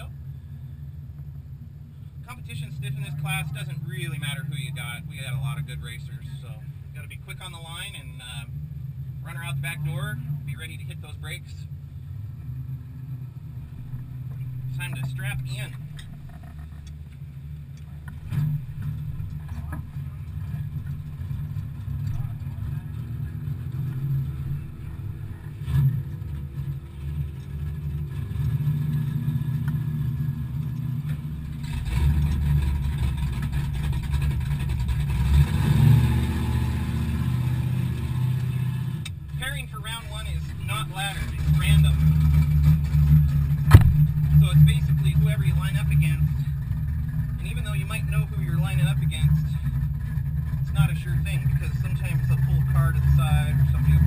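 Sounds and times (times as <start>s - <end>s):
race car engines idling: 0.0s - 54.0s
distant voice: 21.8s - 25.9s.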